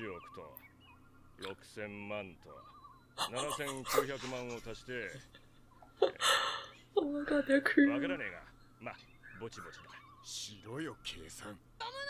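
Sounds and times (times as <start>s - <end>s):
quiet anime dialogue: 0.0s - 12.0s.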